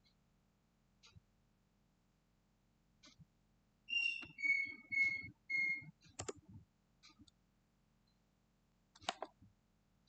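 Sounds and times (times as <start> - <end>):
whistled notes: 3.9 - 5.9.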